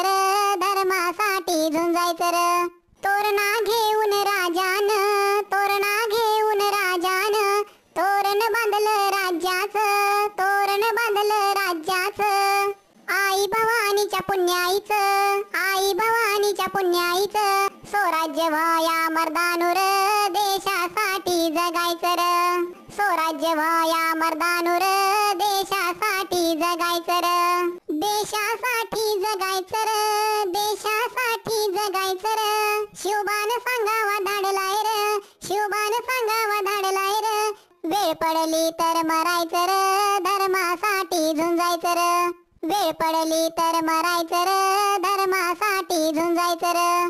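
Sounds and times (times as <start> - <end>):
pitch-raised cartoon voice singing: 0.0 - 47.0.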